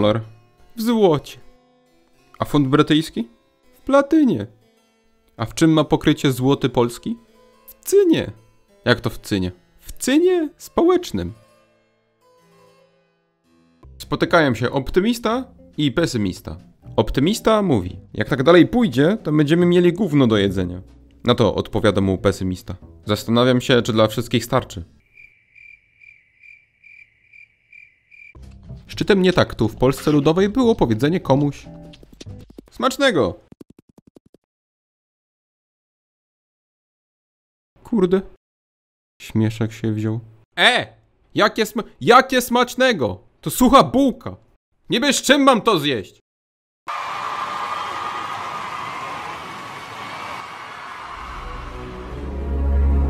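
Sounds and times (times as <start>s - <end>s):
crickets chirping: 25.0s - 28.4s.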